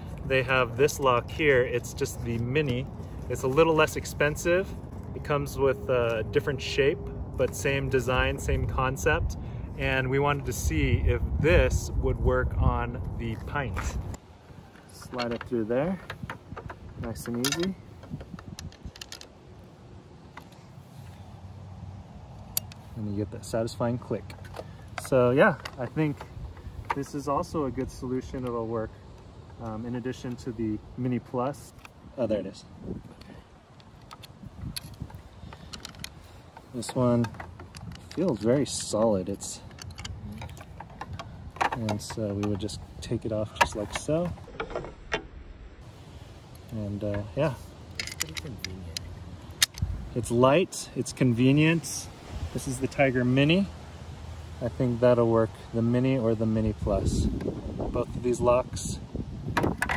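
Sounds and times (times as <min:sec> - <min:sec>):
light metal clicks: 0:14.8 - 0:19.7, 0:22.3 - 0:23.0, 0:33.2 - 0:45.2, 0:46.5 - 0:49.9
metal lock clicks and taps: 0:15.1 - 0:19.2, 0:48.0 - 0:49.9.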